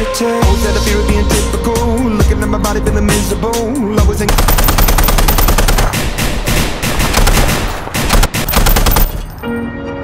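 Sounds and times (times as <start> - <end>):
machine gun firing bursts: 4.3 - 9.4.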